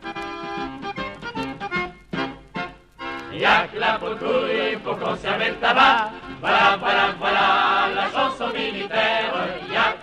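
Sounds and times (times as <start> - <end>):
accordion notes: 0.0 - 10.0.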